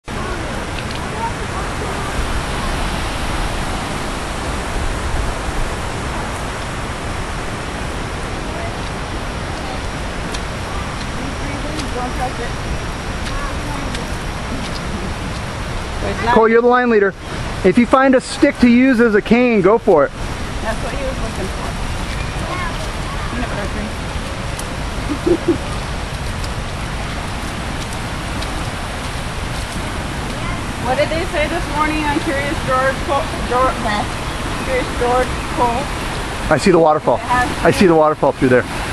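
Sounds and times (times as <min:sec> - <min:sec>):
fast-flowing stream rushing: 0:00.0 - 0:38.9.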